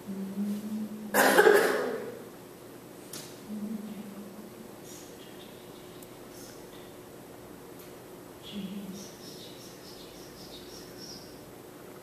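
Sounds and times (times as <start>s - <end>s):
low steady hum: 0.0s - 12.0s
person coughing: 1.1s - 2.1s.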